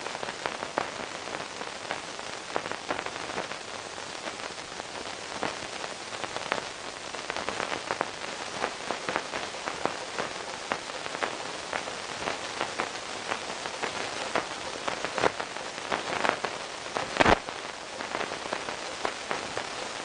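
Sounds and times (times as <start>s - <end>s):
crackling hiss: 0.0s - 20.0s.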